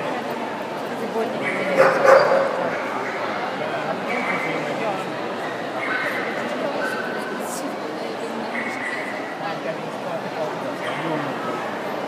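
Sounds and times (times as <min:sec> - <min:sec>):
crowd chatter: 0:00.0 - 0:12.0
dog barking: 0:01.4 - 0:02.8.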